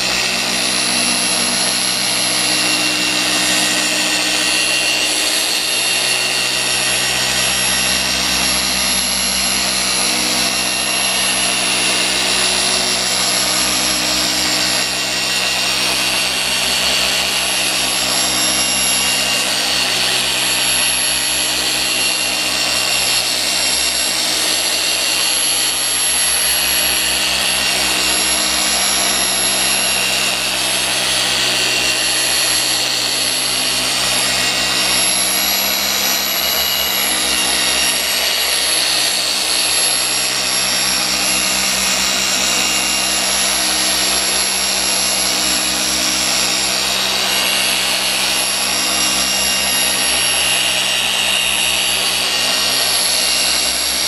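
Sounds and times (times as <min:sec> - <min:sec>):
polisher whirring: 0:00.0 - 0:54.0.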